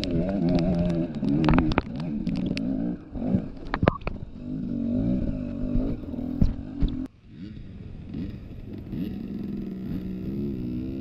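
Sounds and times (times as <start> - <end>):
dirt bike engine revving: 0.0 - 3.6, 4.2 - 11.0.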